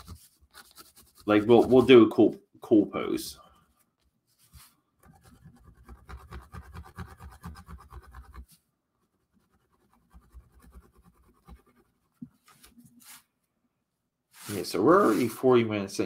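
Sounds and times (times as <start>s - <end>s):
pencil scratching on cardboard: 0.0s - 1.9s, 4.5s - 13.2s.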